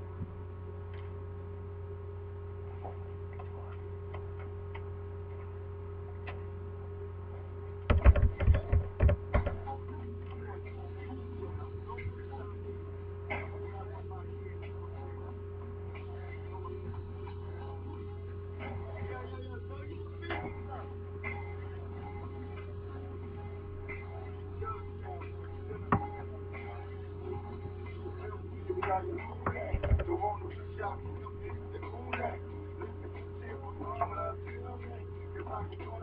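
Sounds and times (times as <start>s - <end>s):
steady electrical hum: 0.0s - 36.0s.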